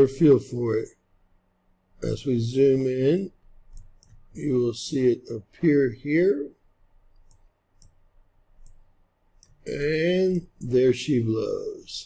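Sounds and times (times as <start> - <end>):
faint mouse clicks: 3.7 - 4.3, 7.1 - 8.0, 8.6 - 9.7.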